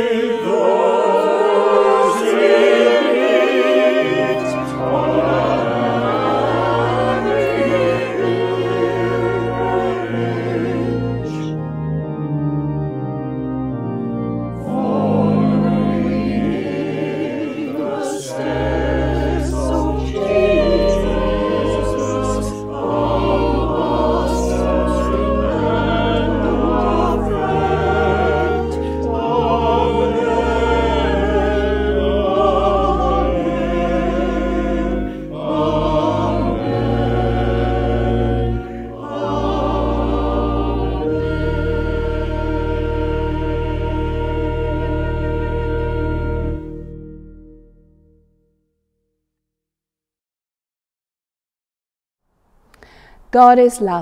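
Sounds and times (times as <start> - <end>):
choir singing with vibrato: 0.0 - 11.9, 14.4 - 47.2
held low accompaniment notes: 3.1 - 47.8.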